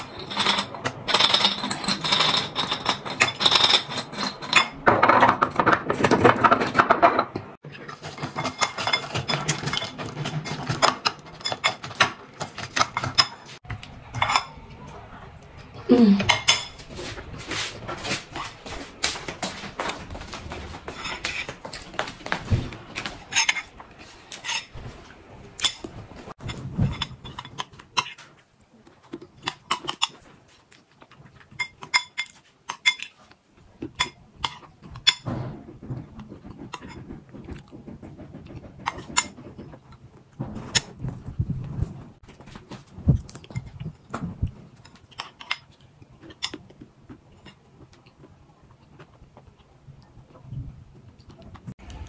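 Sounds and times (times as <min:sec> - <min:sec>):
spoon scraping bowl: 0:07.7 - 0:13.6, 0:20.9 - 0:22.1, 0:23.0 - 0:24.9, 0:25.6 - 0:28.3
chewing crunchy food: 0:42.2 - 0:50.4.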